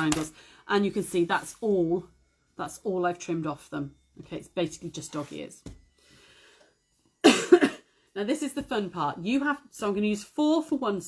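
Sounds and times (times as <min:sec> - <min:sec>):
person coughing: 0:07.2 - 0:07.9.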